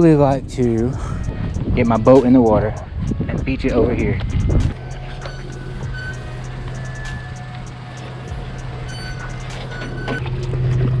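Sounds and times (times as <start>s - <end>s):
engine running at low revs: 0.0s - 11.0s.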